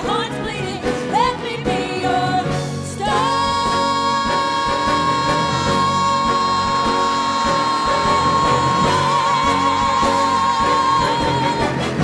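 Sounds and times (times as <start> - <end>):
live musical accompaniment: 0.0 - 12.0
two women singing a duet: 0.0 - 12.0.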